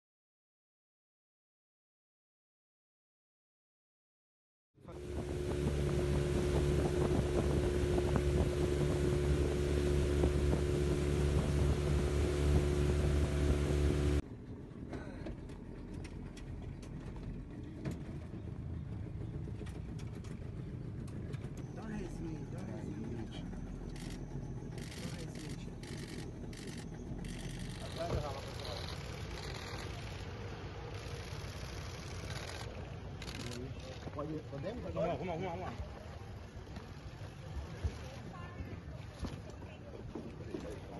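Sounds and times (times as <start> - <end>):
boat engine running: 4.8 - 40.9
wind and water noise: 4.8 - 40.9
faint voices: 21.7 - 31.2.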